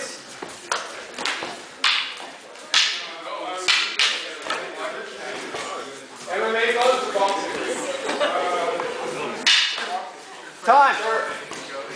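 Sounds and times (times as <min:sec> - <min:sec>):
sparring sticks cracking: 0:00.6 - 0:04.7, 0:09.4 - 0:10.0.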